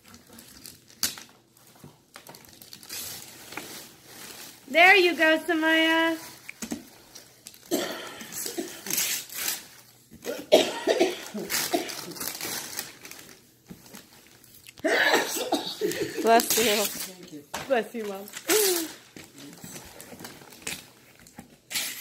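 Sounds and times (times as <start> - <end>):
wrapping paper rustling and tearing: 0.0 - 7.7, 8.3 - 10.2, 11.3 - 14.8, 15.8 - 22.0
person coughing: 7.7 - 9.0, 10.2 - 12.2, 14.8 - 16.3.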